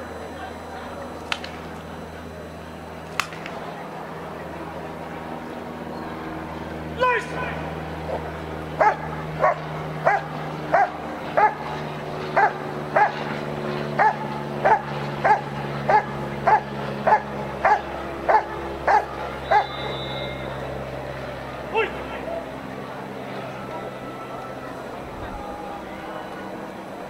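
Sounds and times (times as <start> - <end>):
steady low hum: 0.0 - 27.0
dog barking sharply: 8.8 - 11.6, 14.0 - 19.7.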